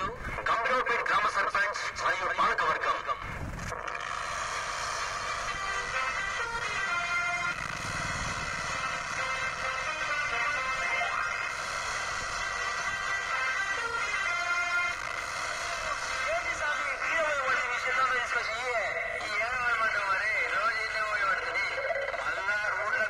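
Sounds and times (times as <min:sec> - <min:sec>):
tractor engine running: 0:03.2 - 0:23.0
song through horn loudspeaker: 0:05.5 - 0:11.5, 0:12.4 - 0:22.0.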